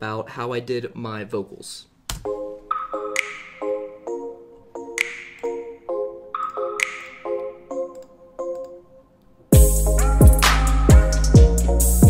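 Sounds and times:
bell-like keyboard chords: 0:02.3 - 0:12.0.

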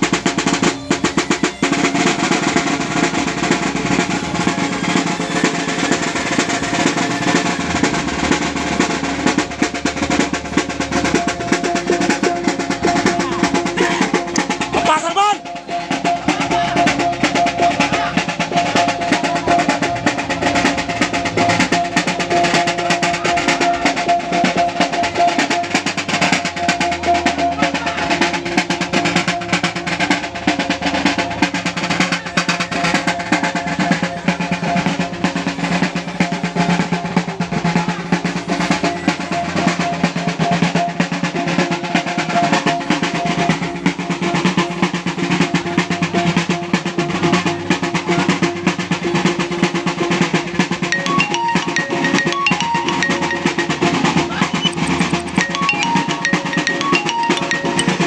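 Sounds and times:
fast hand drumming: 0:00.0 - 0:58.0
steady ringing tones: 0:50.6 - 0:58.0
higher struck notes: 0:50.8 - 0:58.0.

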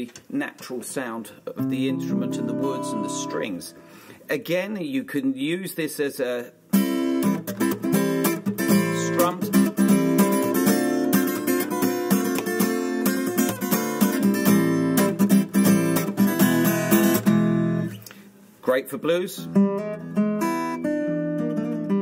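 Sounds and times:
acoustic guitar playing blues: 0:01.5 - 0:04.2, 0:06.7 - 0:18.0, 0:19.4 - 0:22.0.

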